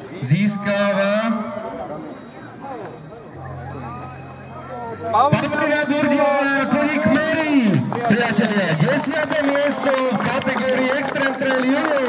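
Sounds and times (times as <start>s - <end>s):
faint crowd chatter: 0.0s - 12.0s.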